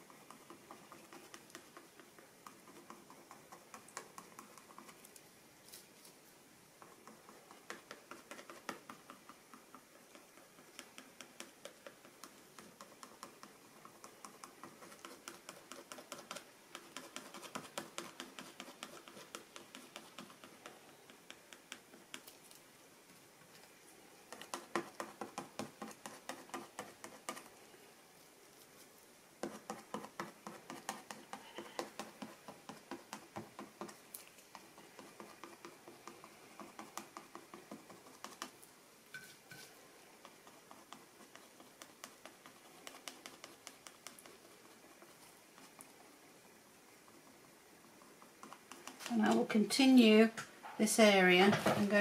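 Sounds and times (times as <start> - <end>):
card scraping paint on paper: 6.8 - 22.4, 24.3 - 27.8, 28.4 - 38.6, 39.2 - 46.1.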